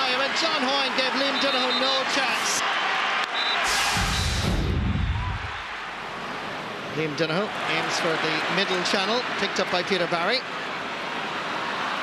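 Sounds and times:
stadium crowd noise: 0.0s - 12.0s
deep rumble: 4.0s - 5.6s.

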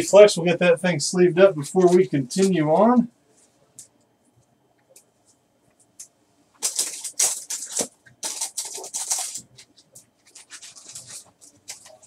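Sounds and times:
plastic sleeve rustling: 6.6s - 12.0s.

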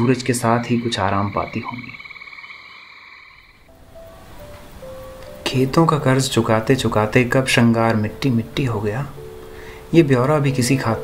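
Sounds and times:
frog pulsing trill: 0.0s - 3.7s
faint held musical notes: 0.0s - 11.0s.

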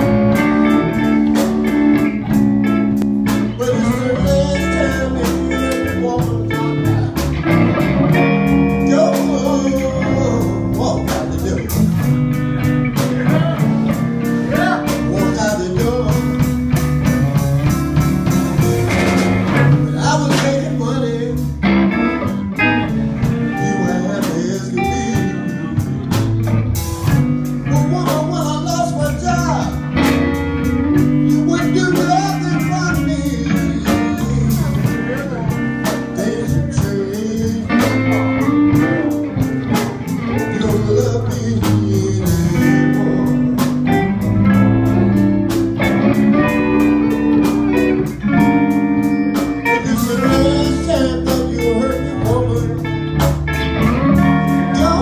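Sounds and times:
live blues band playing: 0.0s - 55.0s
drum hits: 15.9s - 20.8s.

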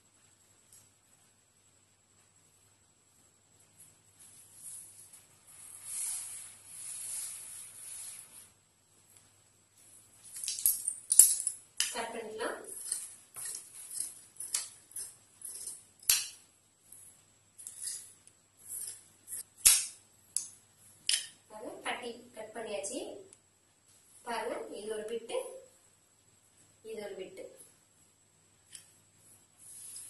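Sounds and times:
marker scratching on fabric: 4.6s - 8.5s, 29.2s - 30.0s
scissor blades clicking: 12.8s - 16.4s.

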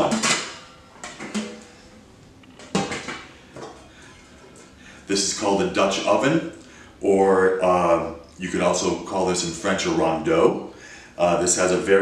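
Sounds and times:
metal pots clanking on countertop: 0.0s - 1.8s, 2.6s - 3.8s.

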